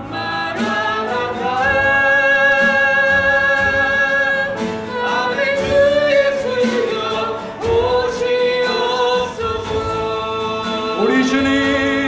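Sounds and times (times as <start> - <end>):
acoustic guitar and keyboard: 0.0 - 12.0
singers in a praise song: 0.0 - 12.0.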